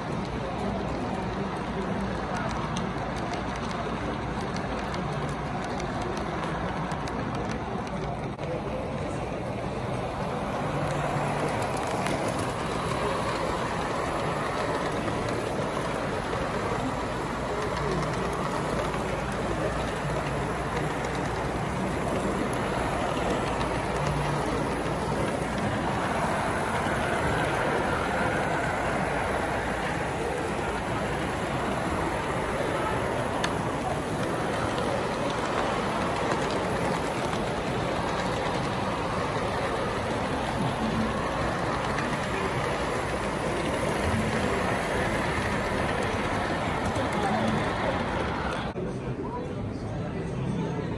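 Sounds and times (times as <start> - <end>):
model train wheels rumbling on track: 0.0 - 48.8
murmur of crowd: 0.0 - 50.9.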